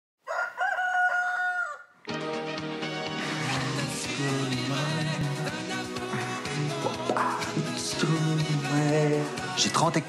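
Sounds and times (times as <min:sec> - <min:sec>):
rooster crowing: 0:00.2 - 0:02.0.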